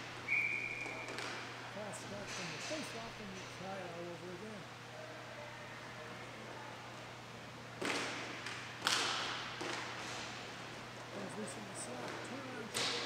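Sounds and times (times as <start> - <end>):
steady low hum: 0.0 - 13.0
hockey stick knocking puck: 7.8 - 10.2.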